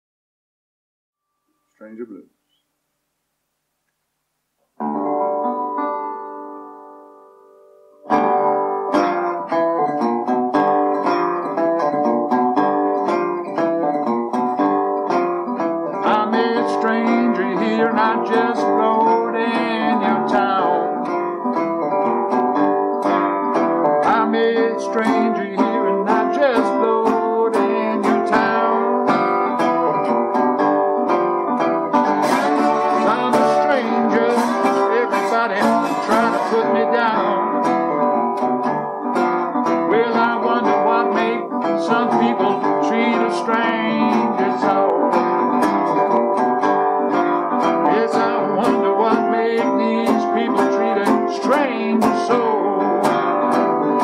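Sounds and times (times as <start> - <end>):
fingerpicked resonator guitar: 4.8 - 54.0.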